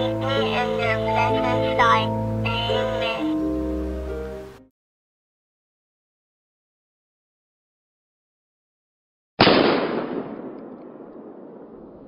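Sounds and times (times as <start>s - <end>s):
sudden echoing bang: 9.4s - 12.0s.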